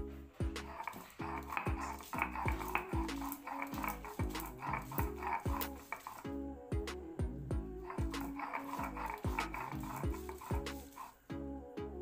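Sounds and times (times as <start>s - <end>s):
stone roller clicks: 0.6s - 6.3s, 7.9s - 11.2s
stone roller grinding on stone slab: 0.6s - 6.3s, 7.8s - 11.2s.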